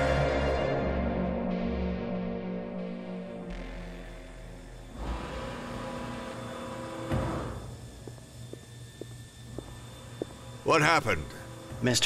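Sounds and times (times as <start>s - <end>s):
sustained synth note: 0.0s - 7.2s.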